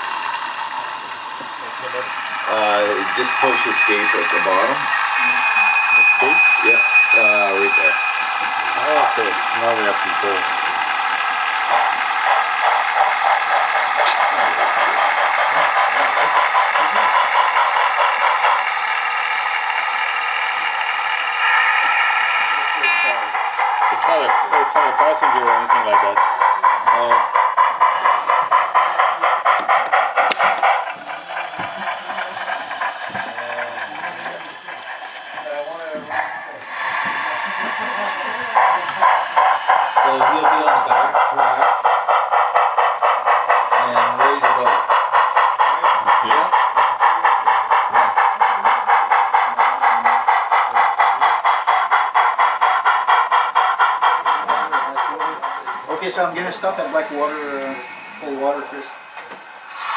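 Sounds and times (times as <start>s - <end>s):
model steam locomotive chuffing: 0.0s - 59.9s.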